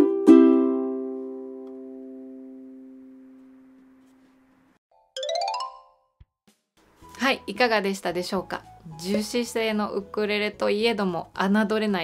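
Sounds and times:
ukulele chord ringing: 0:00.0 - 0:03.8, 0:05.0 - 0:06.1.

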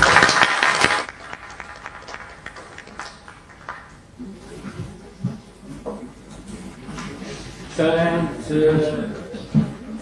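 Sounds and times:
audience applauding: 0:00.0 - 0:03.9.

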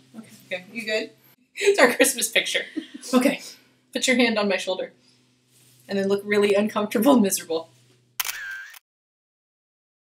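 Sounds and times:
camera shutter click: 0:08.2 - 0:08.8.

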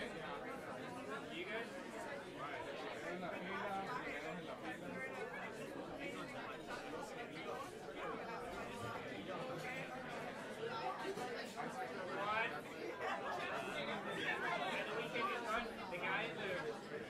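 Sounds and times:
audience chatter: 0:00.0 - 0:17.0.

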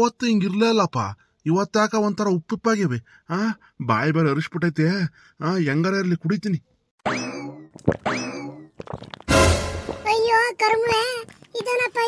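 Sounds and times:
cartoon boing: 0:07.0 - 0:10.0.

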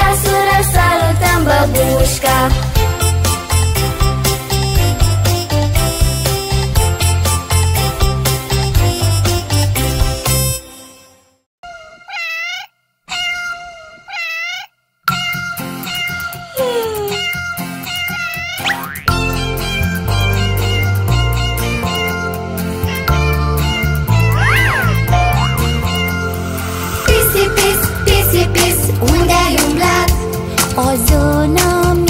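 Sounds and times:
upbeat children's song: 0:00.0 - 0:10.6, 0:15.1 - 0:32.0
cat meowing: 0:11.7 - 0:18.8
steady bass beat: 0:24.1 - 0:26.1.

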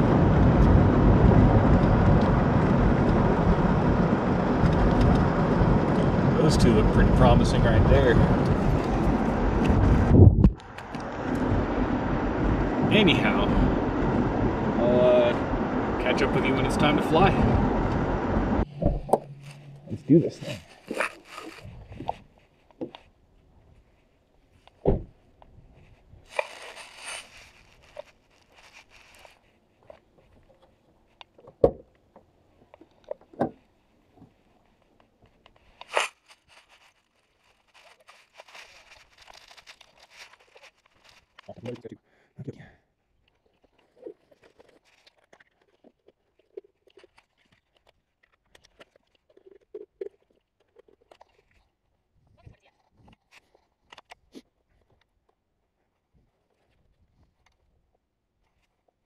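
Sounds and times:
rustling: 0:18.6 - 0:41.9, 0:43.2 - 0:51.7.

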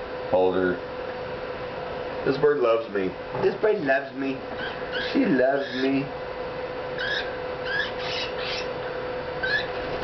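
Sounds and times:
faint background hum: 0:00.0 - 0:10.0
cockatiel chirping: 0:04.6 - 0:06.0, 0:07.0 - 0:08.7, 0:09.4 - 0:09.7.

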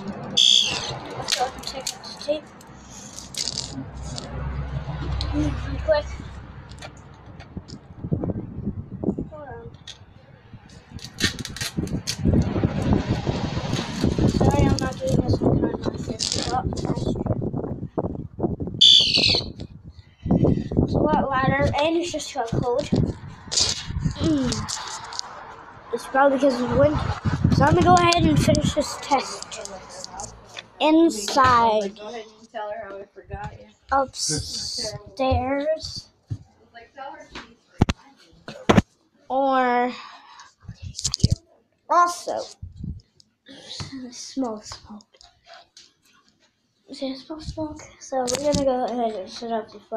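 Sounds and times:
wind buffeting microphone: 0:03.7 - 0:30.1, 0:40.6 - 0:41.4, 0:42.6 - 0:43.1.

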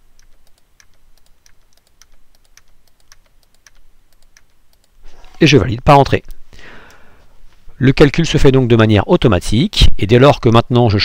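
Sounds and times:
typing on computer keyboard: 0:00.0 - 0:05.0
mouse clicks: 0:00.1 - 0:05.0.

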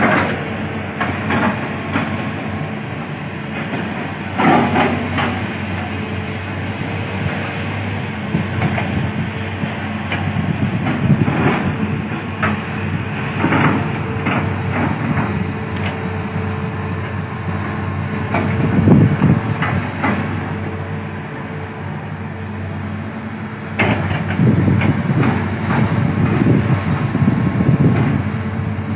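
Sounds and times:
machinery knocks and clanks: 0:00.0 - 0:20.8, 0:23.6 - 0:28.4
excavator diesel engines running: 0:00.0 - 0:28.9.

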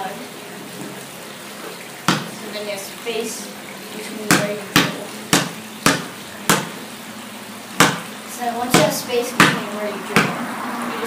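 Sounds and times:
basketball bouncing on concrete: 0:02.0 - 0:02.4, 0:04.2 - 0:06.8, 0:07.8 - 0:08.1, 0:08.7 - 0:10.5.

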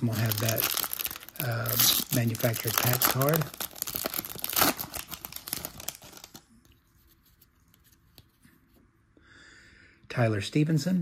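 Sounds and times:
foil wrapper tearing and crinkling: 0:00.0 - 0:06.4
handling of cards: 0:00.0 - 0:08.8.

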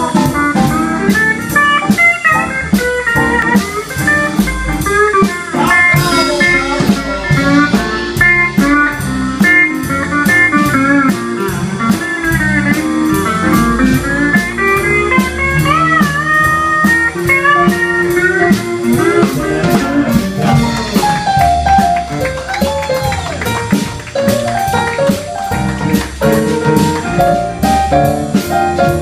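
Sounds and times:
pedal steel guitar bending notes: 0:00.0 - 0:29.0
western swing band playing: 0:00.0 - 0:29.0.

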